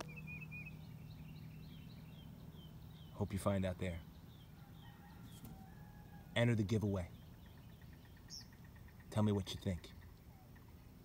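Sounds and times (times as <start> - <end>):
bird chirps: 0.0 - 11.0.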